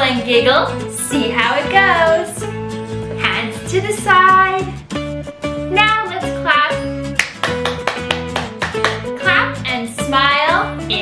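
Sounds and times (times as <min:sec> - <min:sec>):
backing track with steady beat: 0:01.6 - 0:09.3.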